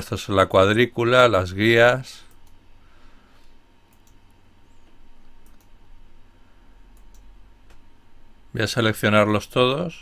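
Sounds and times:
faint background hum: 0.0s - 10.0s.

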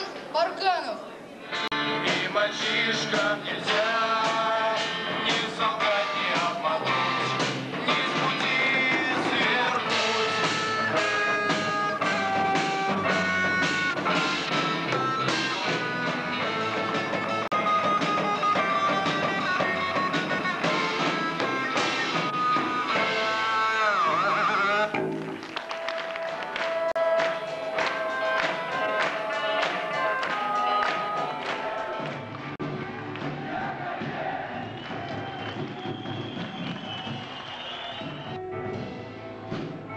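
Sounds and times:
keyboard: 1.4s - 34.5s
electric guitar: 1.5s - 33.1s
drum kit: 1.6s - 39.9s
voices singing held notes: 1.8s - 13.3s.

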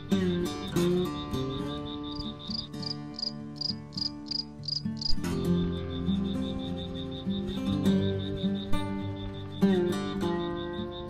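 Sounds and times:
crickets trilling: 0.0s - 11.0s
higher repeating chirp: 0.0s - 11.0s
soft guitar music: 0.0s - 11.0s.

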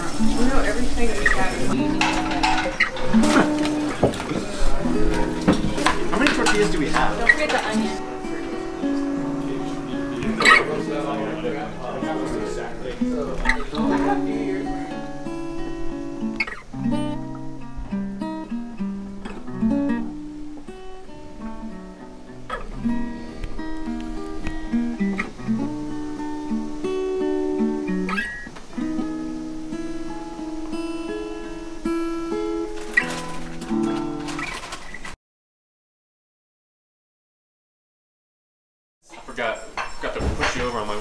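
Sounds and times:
acoustic guitar music: 0.0s - 35.2s, 39.1s - 41.0s.

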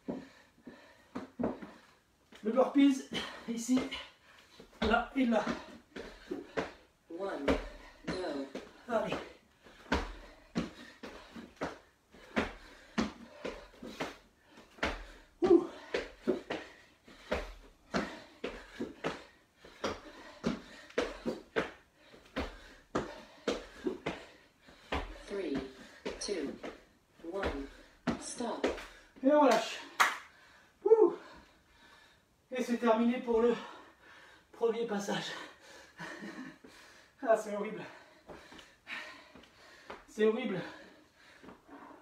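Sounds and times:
breaths and grunts: 0.0s - 32.3s, 33.3s - 42.0s
feet landing on wooden floor: 4.6s - 6.8s, 7.4s - 29.0s
person gasping: 12.2s - 26.2s.

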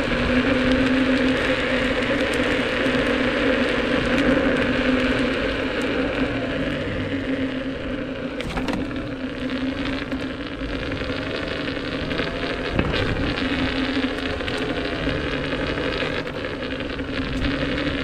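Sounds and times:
electric motor whine: 0.0s - 18.0s
tyre noise over asphalt: 0.0s - 18.0s.

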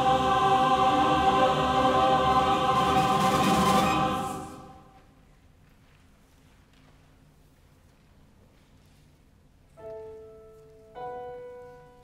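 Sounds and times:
choir holding sustained chord: 0.0s - 5.0s.

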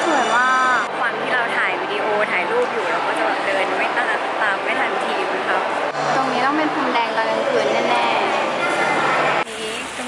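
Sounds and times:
woman talking: 9.4s - 10.0s.

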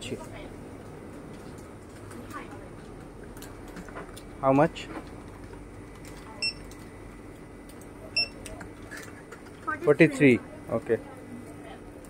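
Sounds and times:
barcode scanner beeping: 6.4s - 6.7s, 8.2s - 8.4s.

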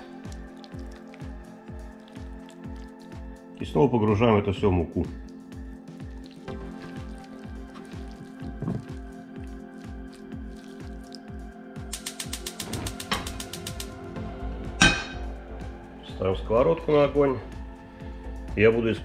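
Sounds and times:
background music with beat: 0.0s - 19.0s
gas igniter clicking: 11.9s - 14.0s.

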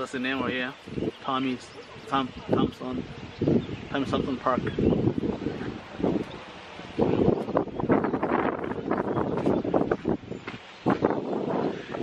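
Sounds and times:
wind gusting on microphone: 0.0s - 12.0s.

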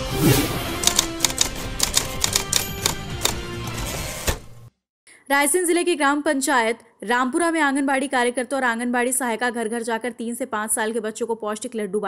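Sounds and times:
news intro music: 0.0s - 4.6s.

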